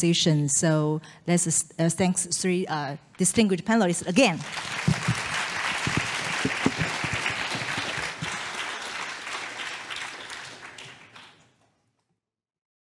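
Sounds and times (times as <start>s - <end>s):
audience applauding: 4.4s - 11.5s.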